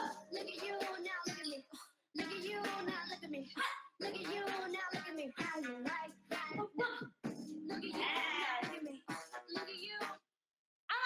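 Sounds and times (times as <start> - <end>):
pop music: 0.0 - 10.2.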